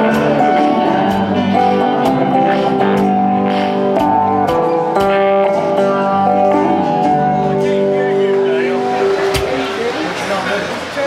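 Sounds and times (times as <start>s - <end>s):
guitars holding a chord: 0.0s - 11.0s
people talking: 7.0s - 11.0s.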